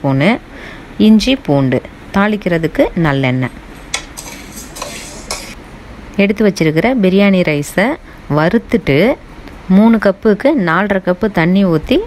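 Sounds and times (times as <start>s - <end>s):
metal spoon scraping pot: 3.4s - 5.6s.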